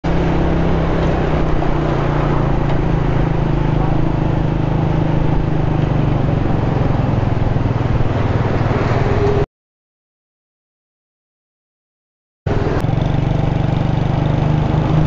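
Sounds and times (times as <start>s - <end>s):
motorcycle engine cruising: 0.0s - 9.5s, 12.5s - 15.0s
road and traffic noise: 0.0s - 9.5s, 12.5s - 15.0s.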